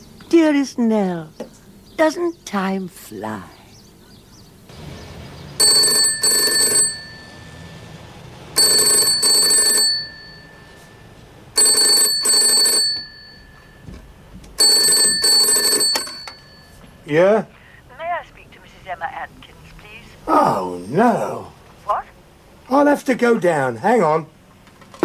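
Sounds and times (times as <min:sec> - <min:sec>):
payphone double ring: 0:05.6 - 0:08.0, 0:08.6 - 0:13.9, 0:14.6 - 0:17.0.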